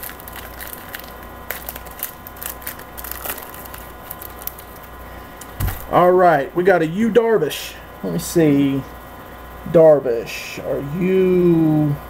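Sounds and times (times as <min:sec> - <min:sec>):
wrapper crinkling and tearing: 0:00.0 - 0:06.0
steady electrical hum: 0:00.0 - 0:12.0
soft thump: 0:05.6 - 0:05.9.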